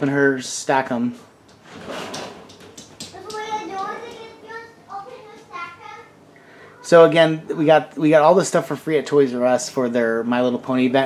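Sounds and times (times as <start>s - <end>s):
scraping or rustling noise: 1.6s - 2.6s
child talking faintly: 3.2s - 7.7s.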